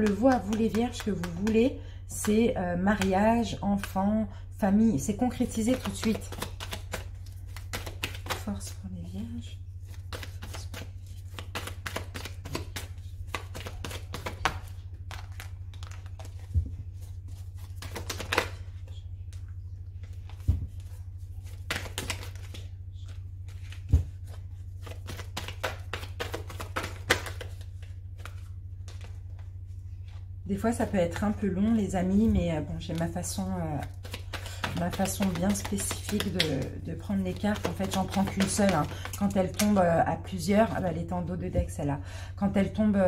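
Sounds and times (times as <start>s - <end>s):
cards being shuffled: 0.0s - 1.6s, 5.4s - 8.7s, 9.8s - 19.4s, 20.0s - 29.5s, 33.8s - 39.8s
steady low hum: 0.0s - 43.0s.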